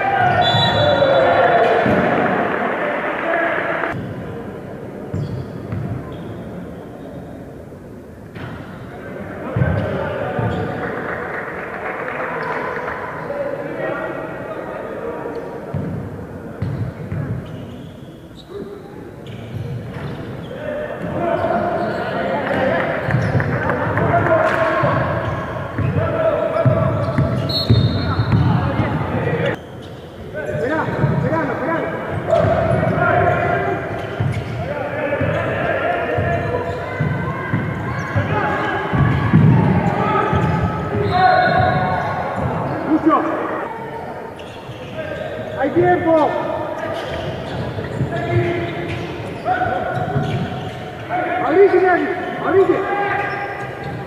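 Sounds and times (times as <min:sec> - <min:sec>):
basketball bouncing on court: 0:05.1 - 0:06.0, 0:23.0 - 0:26.0, 0:26.6 - 0:28.9, 0:34.0 - 0:34.6, 0:38.9 - 0:42.7, 0:49.9 - 0:50.6
people calling and shouting: 0:12.2 - 0:54.0.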